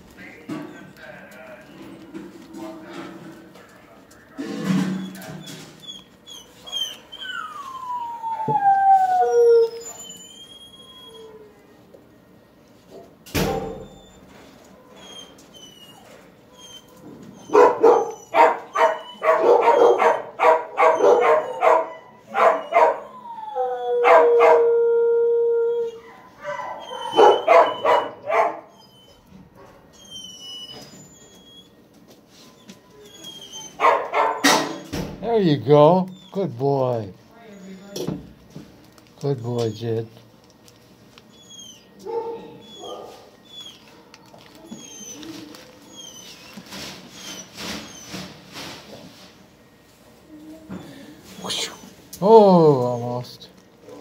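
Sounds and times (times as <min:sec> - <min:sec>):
dog howling: 0:05.0 - 0:11.7, 0:14.8 - 0:29.2, 0:41.3 - 0:46.6
dogs barking: 0:16.9 - 0:23.2, 0:23.9 - 0:24.8, 0:26.0 - 0:28.8, 0:33.5 - 0:34.9, 0:41.6 - 0:45.2.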